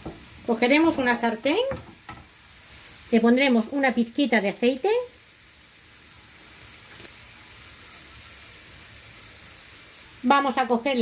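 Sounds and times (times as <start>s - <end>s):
food sizzling in frying pans: 0.0s - 11.0s.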